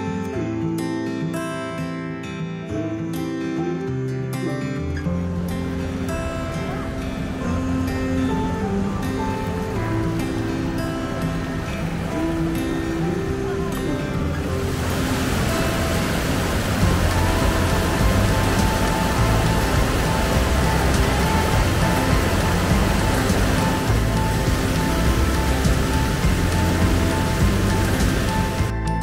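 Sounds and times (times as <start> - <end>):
background music: 0.0 - 29.0
waterfall rushing over rocks: 5.4 - 28.7.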